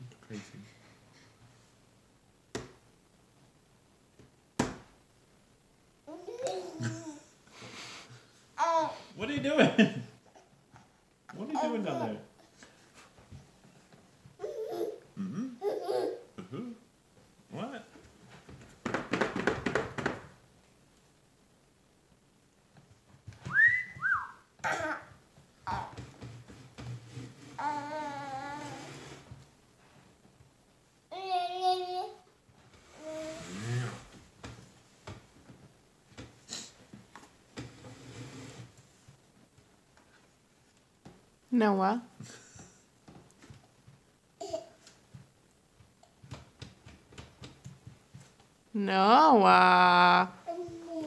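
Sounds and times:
person whistling: 0:23.5 - 0:24.4.

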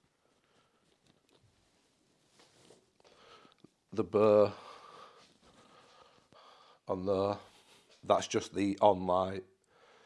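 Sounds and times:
rustling and handling noises: 0:00.0 - 0:04.0, 0:04.8 - 0:06.4.

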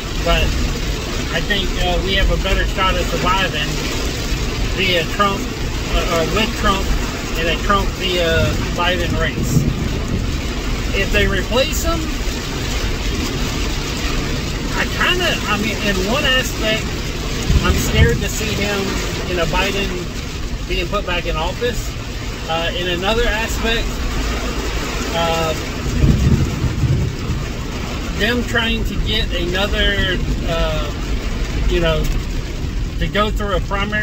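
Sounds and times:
engine and tyre rumble: 0:00.0 - 0:34.0
hiss of wet road and rain: 0:00.0 - 0:34.0.

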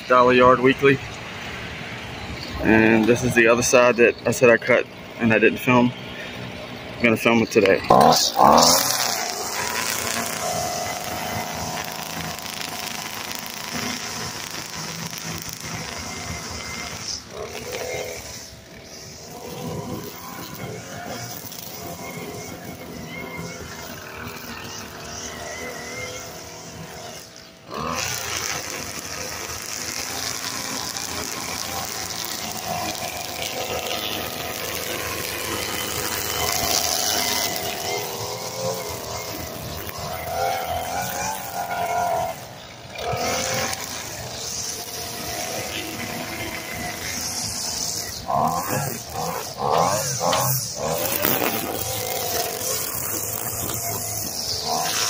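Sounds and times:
string trimmer running: 0:00.0 - 0:55.0.

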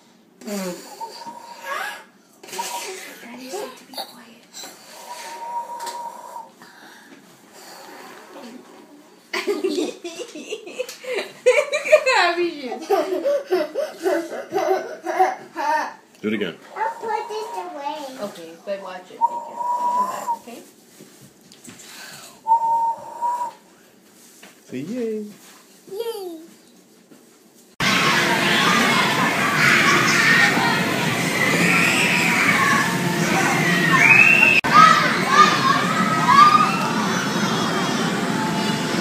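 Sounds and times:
whistled notes: 0:05.0 - 0:06.5, 0:19.2 - 0:20.5, 0:22.4 - 0:23.6, 0:31.3 - 0:34.7
children squealing: 0:16.8 - 0:17.9, 0:27.8 - 0:39.0.

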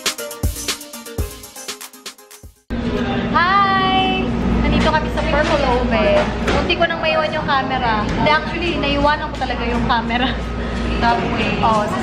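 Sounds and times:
low background rumble and hum: 0:02.7 - 0:12.0
woman talking: 0:03.4 - 0:12.0.

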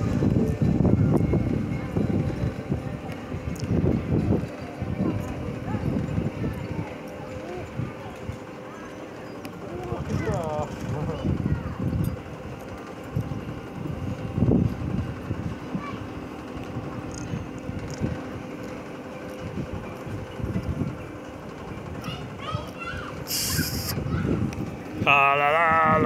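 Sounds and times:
wind buffeting microphone: 0:00.0 - 0:08.6, 0:09.5 - 0:26.0
amusement ride mechanical hum: 0:00.0 - 0:26.0
faint voices: 0:00.0 - 0:26.0
short sharp hiss: 0:23.3 - 0:24.0.

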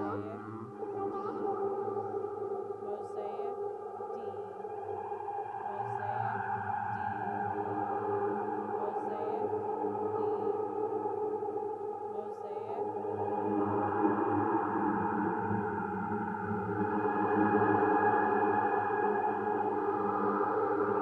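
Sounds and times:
pitch-shifted voice drone: 0:00.0 - 0:02.2, 0:05.7 - 0:08.0, 0:08.8 - 0:09.5, 0:10.1 - 0:10.6.

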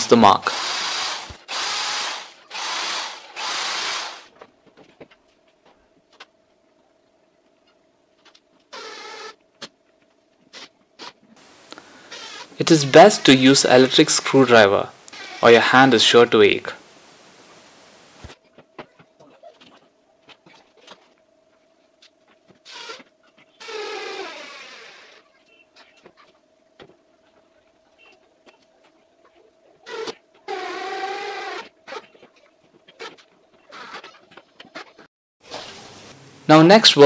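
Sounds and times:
electric screwdriver whirring: 0:00.5 - 0:04.3.

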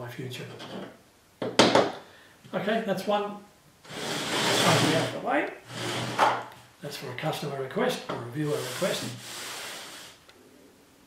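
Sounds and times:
metal scraping across workbench: 0:03.9 - 0:06.4, 0:08.4 - 0:10.2.

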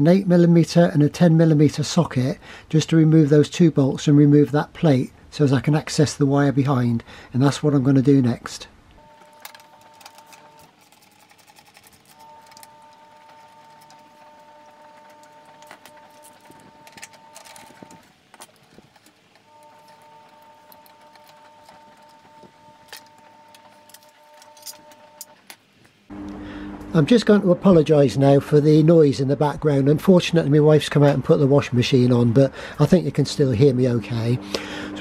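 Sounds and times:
washing machine humming: 0:09.0 - 0:31.4, 0:32.3 - 0:35.0.

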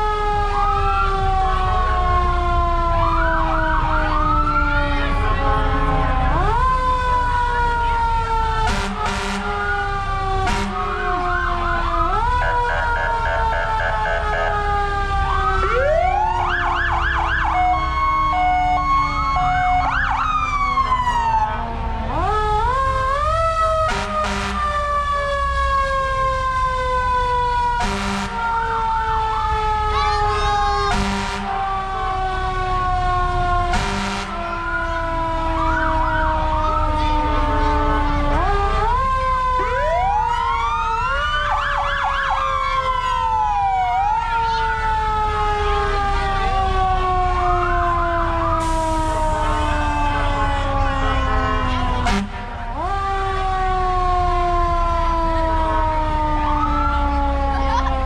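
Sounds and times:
siren yelps: 0:00.0 - 0:58.0
sirens wailing: 0:00.0 - 0:58.0
short horn blasts: 0:08.7 - 0:09.5, 0:10.5 - 0:10.8, 0:23.9 - 0:24.6, 0:27.8 - 0:28.4, 0:30.9 - 0:31.5, 0:33.7 - 0:34.4.

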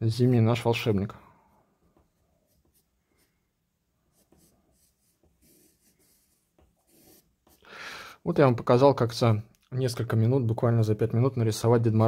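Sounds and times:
pencil scratching on paper: 0:02.1 - 0:07.6.

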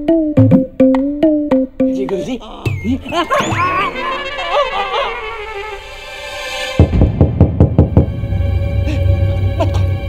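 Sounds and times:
dramatic background music: 0:03.2 - 0:10.0.

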